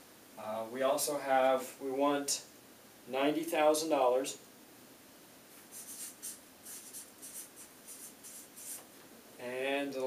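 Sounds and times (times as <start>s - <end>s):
marker pen scratching on paper: 5.6s - 8.8s.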